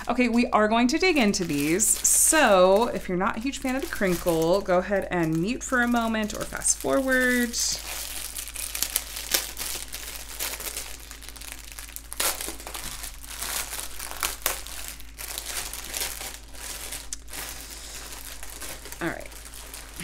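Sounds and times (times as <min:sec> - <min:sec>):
plastic wrap crinkling: 0:00.0 - 0:20.0.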